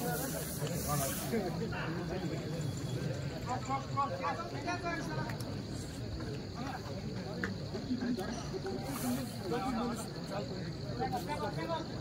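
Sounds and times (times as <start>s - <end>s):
steady high hiss: 0.0s - 2.4s
distant indistinct voices: 0.0s - 12.0s.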